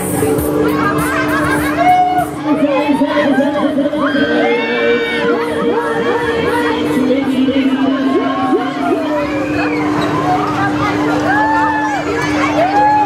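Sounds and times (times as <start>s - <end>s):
riders screaming and shouting: 0.1s - 13.0s.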